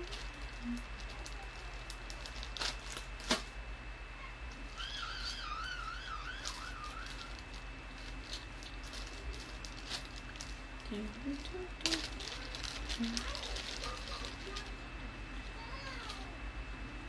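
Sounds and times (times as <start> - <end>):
warbling whistle: 4.7 - 7.4.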